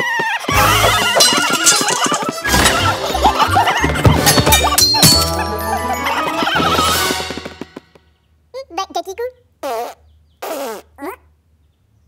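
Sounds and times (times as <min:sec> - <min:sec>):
cartoon character vocal sounds: 0:08.6 - 0:11.3.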